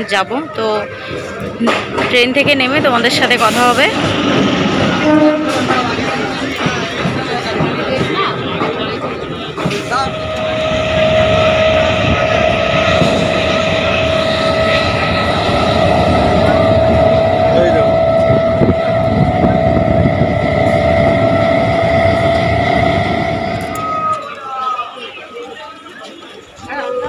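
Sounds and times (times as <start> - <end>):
train high whine: 0.0 - 27.0
train rumble: 0.0 - 27.0
rushing air: 9.5 - 24.3.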